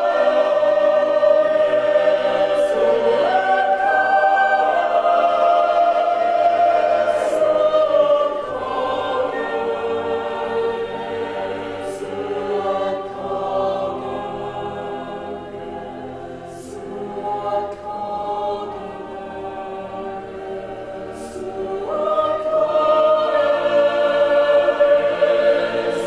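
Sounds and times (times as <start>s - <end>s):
mixed choir singing a cappella: 0.0s - 26.0s.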